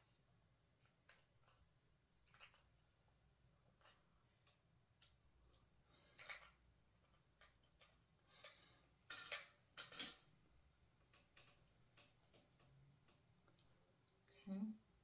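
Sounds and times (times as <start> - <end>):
faint plastic clicks: 3.8 - 10.2.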